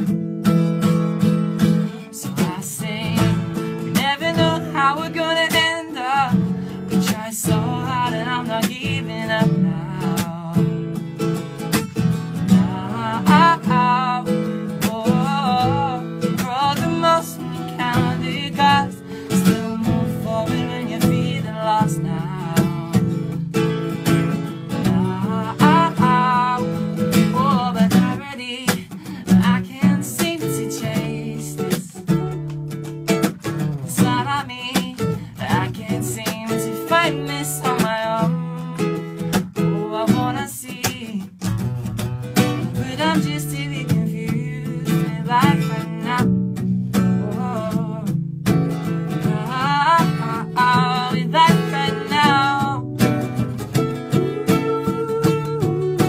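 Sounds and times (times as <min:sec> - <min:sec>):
acoustic guitar strumming chords: 0:00.0 - 0:56.0.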